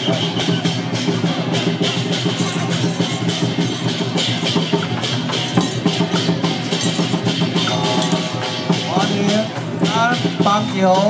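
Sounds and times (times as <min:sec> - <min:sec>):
procession drums and percussion: 0:00.0 - 0:11.0.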